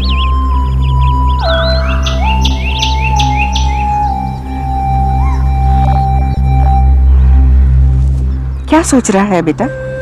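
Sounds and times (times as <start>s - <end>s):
low drone: 0.0s - 10.0s.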